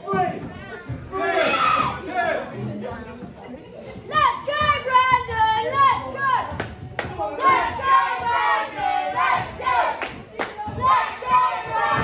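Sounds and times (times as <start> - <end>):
children shouting and chanting: 0.1 - 2.4, 4.1 - 6.6, 7.2 - 12.0.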